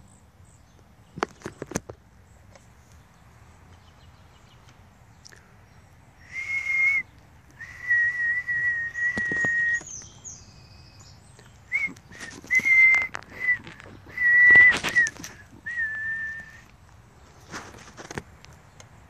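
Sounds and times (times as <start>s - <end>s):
person whistling: 6.2s - 9.9s, 11.7s - 16.7s.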